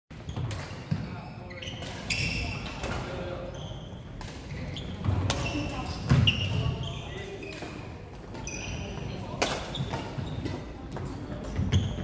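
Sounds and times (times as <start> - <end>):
sneakers squeaking on floor: 0.1 - 12.0.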